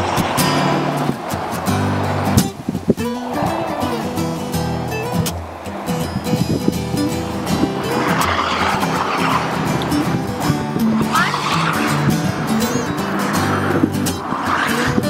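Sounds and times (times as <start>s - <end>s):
traffic passing on a bridge: 0.0s - 15.0s
truck passing: 0.0s - 15.0s.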